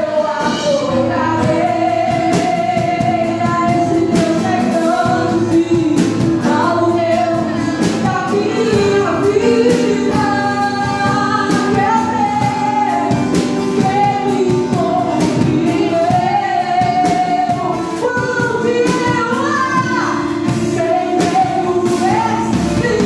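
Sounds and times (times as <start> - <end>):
acoustic guitar: 0.0 - 23.0
drum kit played with sticks: 0.0 - 23.0
woman singing into a microphone: 0.0 - 23.0.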